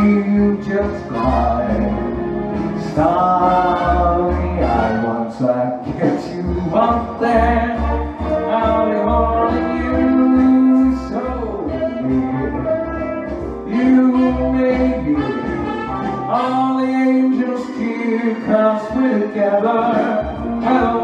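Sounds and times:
man singing into microphone: 0:00.0 - 0:02.2, 0:02.8 - 0:21.0
backing track with bass line: 0:00.0 - 0:21.0.

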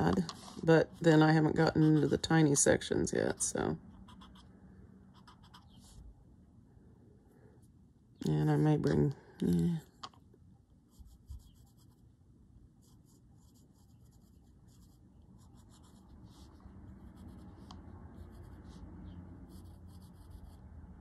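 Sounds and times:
pencil scratching on paper: 0:00.0 - 0:02.6, 0:03.2 - 0:04.5, 0:05.2 - 0:06.0, 0:10.9 - 0:12.0, 0:12.8 - 0:20.7.

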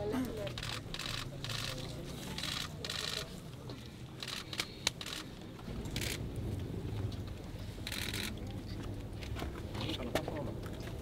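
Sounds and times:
low hum: 0:05.6 - 0:09.8.

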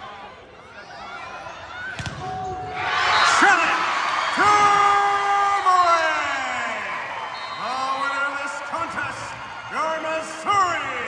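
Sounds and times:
crowd cheering and shouting: 0:00.0 - 0:11.0
volleyball smack: 0:01.9 - 0:02.5.

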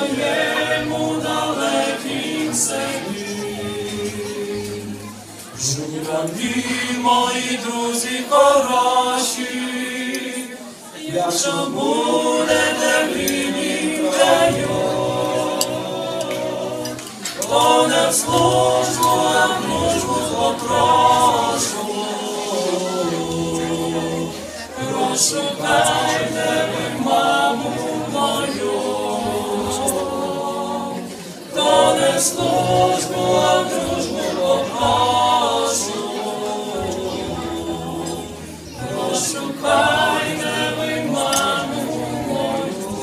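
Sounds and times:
male vocal quartet singing: 0:00.0 - 0:43.0.

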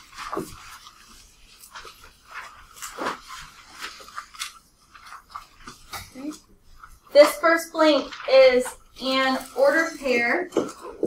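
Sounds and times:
rustling: 0:00.0 - 0:11.0.

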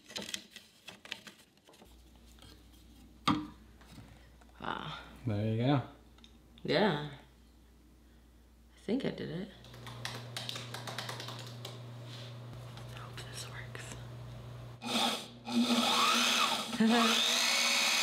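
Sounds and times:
small clicks and taps: 0:09.6 - 0:11.8.

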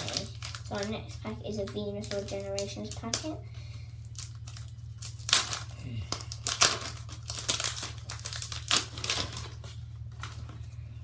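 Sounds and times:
foil wrapper crinkling and tearing: 0:00.0 - 0:10.8
steady low hum: 0:00.0 - 0:11.0.

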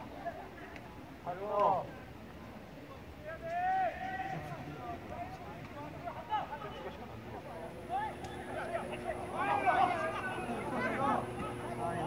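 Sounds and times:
voices shouting: 0:07.5 - 0:12.0.

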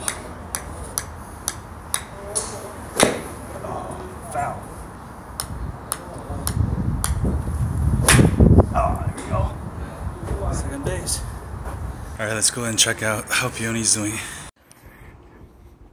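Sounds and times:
golf clubs striking balls: 0:00.0 - 0:04.5, 0:05.3 - 0:07.3, 0:08.0 - 0:09.5.

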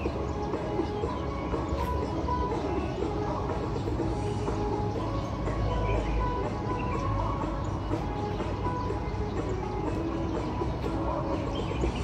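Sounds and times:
dance music: 0:00.0 - 0:12.0.

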